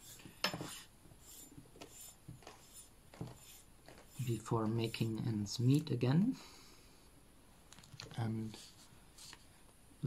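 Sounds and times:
string rubbing against pipe: 0.0 - 5.3.

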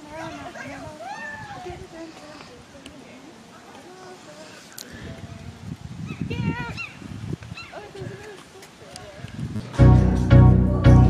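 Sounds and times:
woman's voice: 0.0 - 5.6, 7.7 - 9.3
woman squealing: 0.6 - 1.6.

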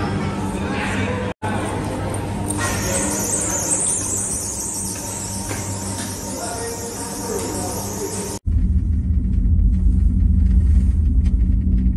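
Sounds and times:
cable car low rumble: 7.8 - 11.9.

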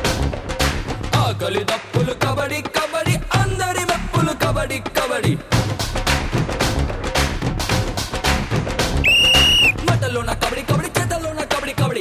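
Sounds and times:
background music with steady beat: 0.0 - 12.0
referee whistle blast: 9.0 - 9.8.

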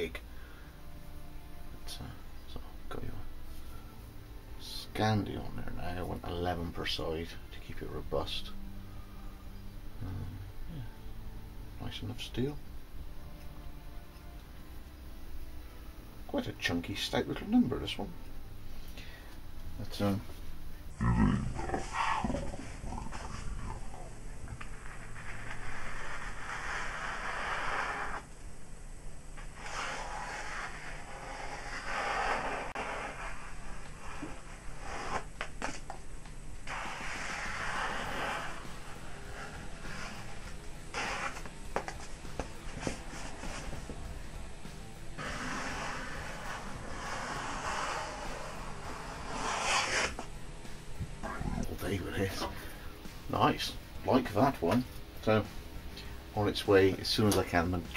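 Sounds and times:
knife slicing paper: 29.6 - 35.8, 45.2 - 50.2.

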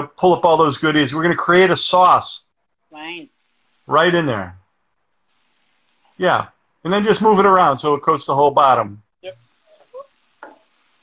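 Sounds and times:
wooden spoon knocking skillet: 9.7 - 11.0.

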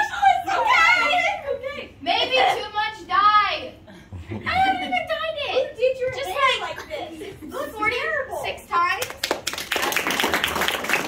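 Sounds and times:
children clapping: 9.0 - 11.0.

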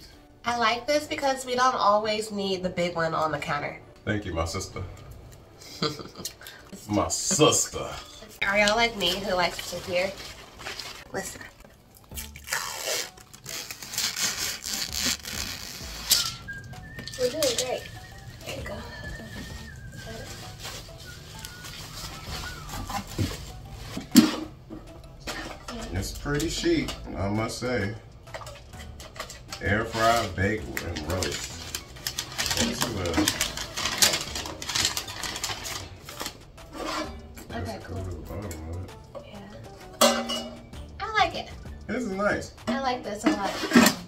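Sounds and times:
handling noises of unboxing: 8.9 - 11.6, 18.4 - 24.4, 29.3 - 37.1.

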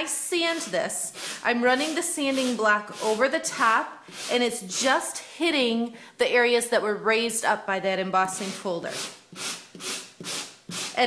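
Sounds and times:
sanding block scratching card: 0.5 - 3.2, 8.4 - 11.0.

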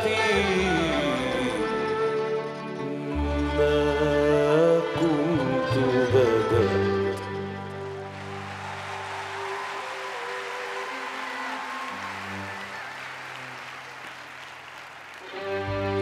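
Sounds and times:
string orchestra sustained chords: 0.0 - 12.8, 15.2 - 16.0
audience applause: 7.4 - 16.0.

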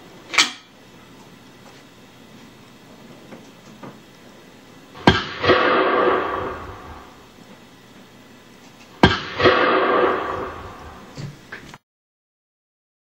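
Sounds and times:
gunshots echoing: 5.0 - 7.2, 9.0 - 11.1.

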